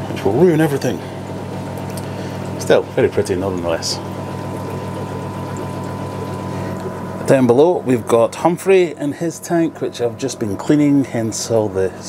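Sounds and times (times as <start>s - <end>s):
low electrical pump hum: 0.0s - 12.0s
trickle of moving water: 1.2s - 7.3s.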